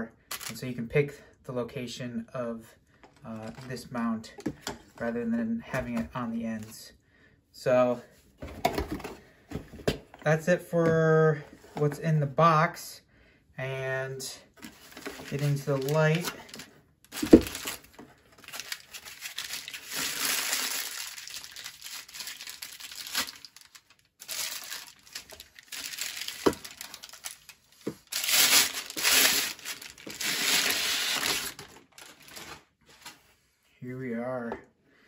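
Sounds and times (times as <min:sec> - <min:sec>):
plastic wrapping crinkling: 0:14.8 - 0:33.2.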